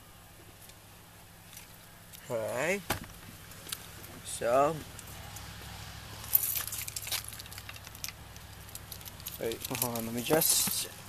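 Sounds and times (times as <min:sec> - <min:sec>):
keys jingling: 0:06.2 - 0:10.7.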